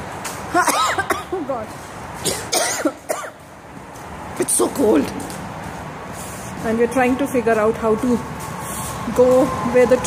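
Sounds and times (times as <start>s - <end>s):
woman coughing: 0.6s - 1.4s, 2.2s - 3.4s.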